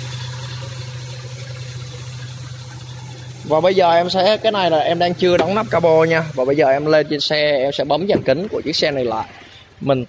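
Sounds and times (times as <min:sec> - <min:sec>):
car engine idling: 0:00.0 - 0:10.0
engine fan and drive belt: 0:00.0 - 0:10.0.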